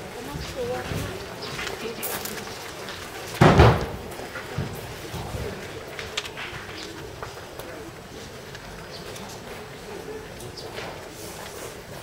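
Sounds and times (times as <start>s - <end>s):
steady background noise: 0.0s - 12.0s
heavy thud: 3.4s - 4.1s.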